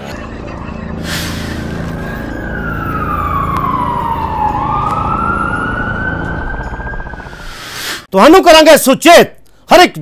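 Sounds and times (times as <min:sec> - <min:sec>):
siren wailing: 0:00.2 - 0:07.7.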